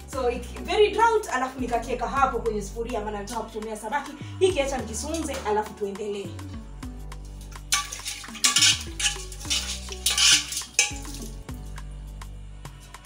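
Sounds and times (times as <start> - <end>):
background music with bass line: 0.0 - 13.0
dishes clattering in a sink: 7.7 - 11.3
dishes being scrubbed: 7.7 - 11.4.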